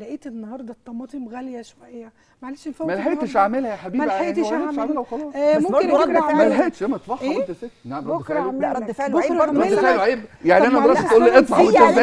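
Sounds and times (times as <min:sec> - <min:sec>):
women talking: 0:08.2 - 0:10.0.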